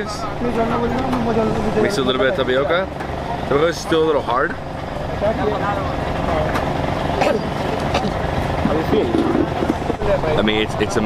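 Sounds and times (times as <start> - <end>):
low motor rumble: 0.0 - 11.0.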